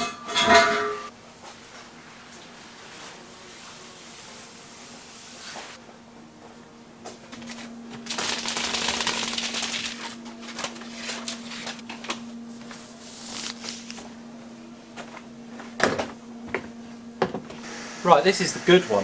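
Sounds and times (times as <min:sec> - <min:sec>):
stiff paper rustling and crackling: 0:07.5 - 0:12.2, 0:13.1 - 0:14.1.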